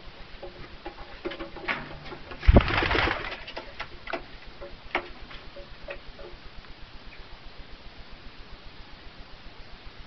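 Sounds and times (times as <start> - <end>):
loud knock and rustle: 0.4 - 4.3.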